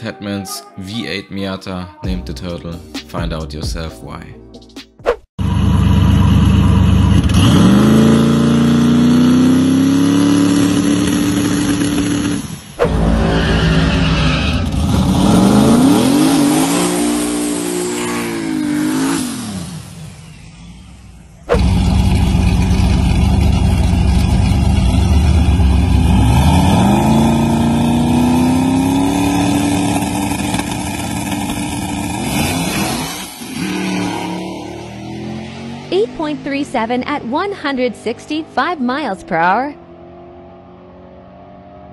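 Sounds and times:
drag car accelerating hard: 5.4 - 41.9.

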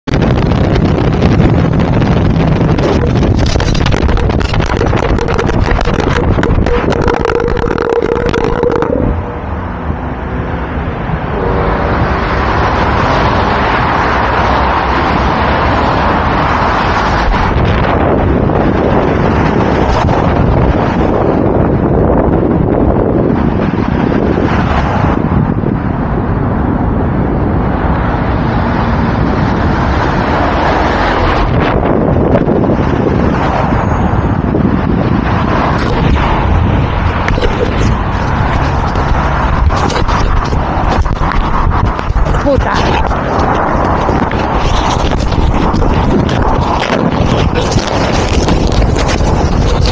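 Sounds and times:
wind on microphone: 0.0 - 49.9
road traffic passing: 0.1 - 49.9
camera clattering on asphalt: 2.6 - 7.0, 36.9 - 49.9.

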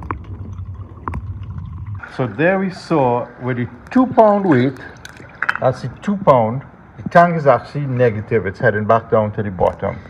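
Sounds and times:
muffled underwater rumble: 0.0 - 6.0
regulator bubbles gurgling: 0.0 - 7.0.

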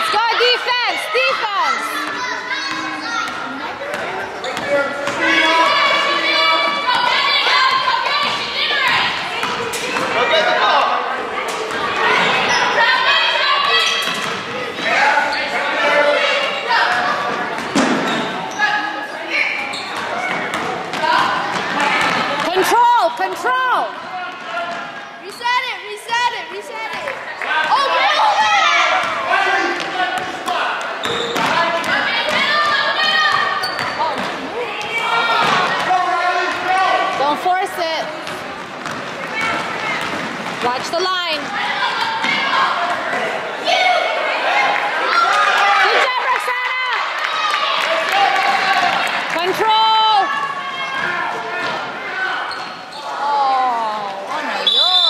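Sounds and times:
people shouting: 5.2 - 10.8, 11.8 - 17.2.

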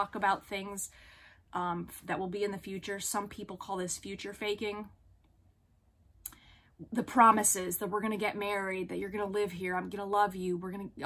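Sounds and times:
woman speaking: 0.0 - 5.0, 6.8 - 11.0.

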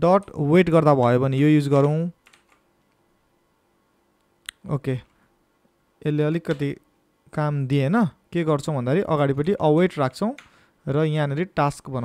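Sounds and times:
faint keyboard keystrokes: 1.8 - 3.0.

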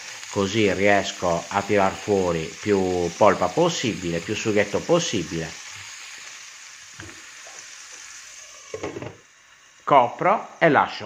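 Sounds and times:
food sizzling in oil: 0.0 - 11.0.

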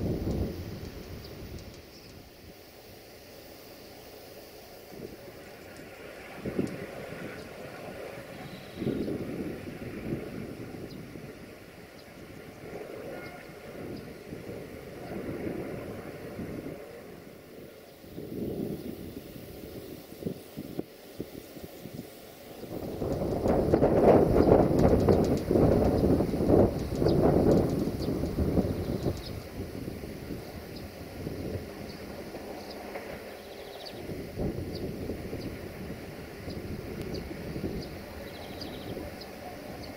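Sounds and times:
wind buffeting microphone: 0.0 - 3.2, 4.7 - 39.9.

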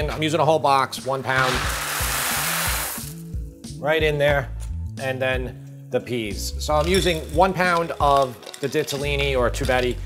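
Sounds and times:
dry pasta pouring into pan: 1.3 - 3.2.

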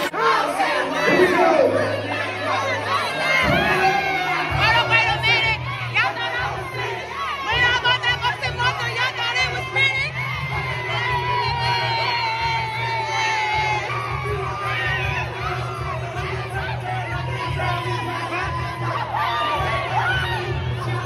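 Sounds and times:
crowd cheering and whooping: 0.0 - 21.0
dance music: 0.0 - 21.0.

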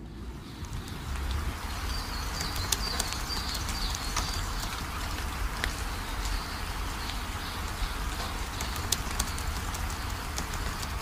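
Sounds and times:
steady rain: 0.0 - 11.0
water drip ticks: 0.2 - 11.0
small bird chirping: 0.4 - 11.0.

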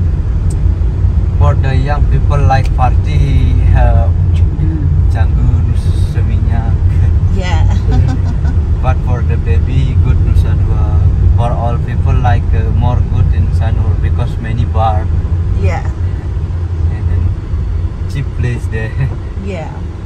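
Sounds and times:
car engine and road rumble: 0.0 - 20.0
voices talking: 1.4 - 16.3, 16.9 - 17.3, 18.1 - 20.0.

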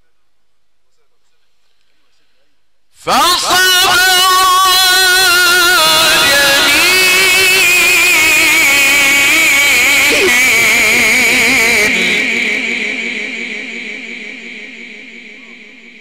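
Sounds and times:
man reciting through loudspeaker: 0.0 - 16.0
echo: 2.9 - 16.0.

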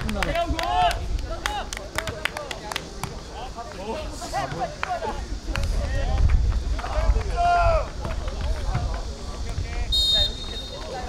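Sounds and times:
players shouting calls: 9.8 - 11.0.

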